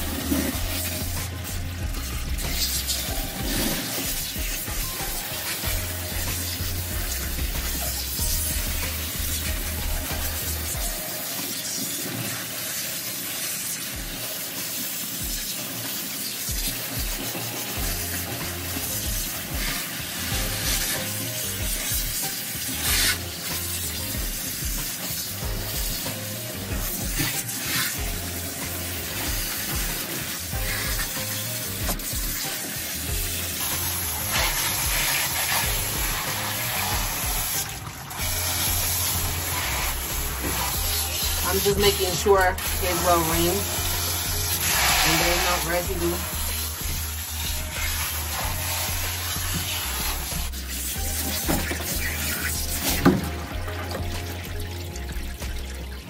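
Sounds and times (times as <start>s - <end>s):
water splashing into metal tub: 0.0s - 56.0s
water spraying from hose sprayer: 0.0s - 56.0s.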